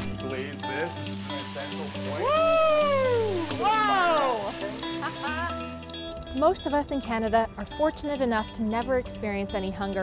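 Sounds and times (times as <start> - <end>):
food sizzling in a pan: 0.0 - 6.0
background music: 0.0 - 10.0
person exclaiming: 2.2 - 5.6.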